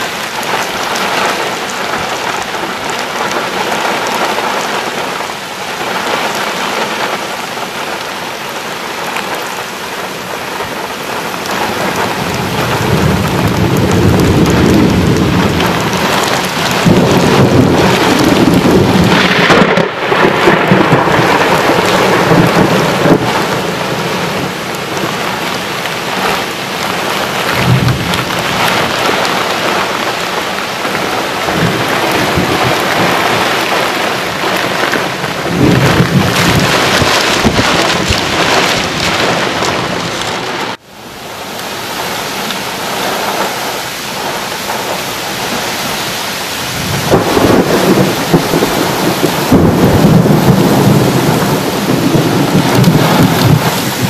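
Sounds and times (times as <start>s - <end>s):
thunder rumble: 0.0s - 40.8s, 42.0s - 54.0s
heavy rain pouring: 0.0s - 54.0s.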